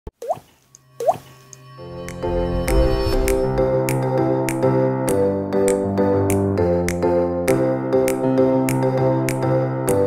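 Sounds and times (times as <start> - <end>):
water drop plops: 0.2 - 1.3
soft music: 0.2 - 10.0.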